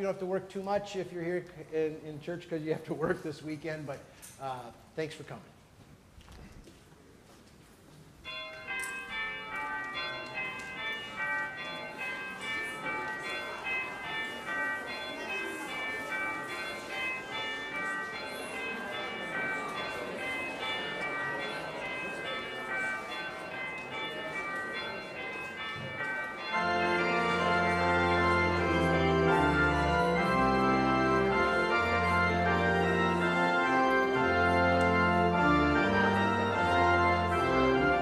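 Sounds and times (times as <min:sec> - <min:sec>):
murmur of congregation chatting: 0:00.0 - 0:38.0
church bells ringing: 0:08.2 - 0:38.0.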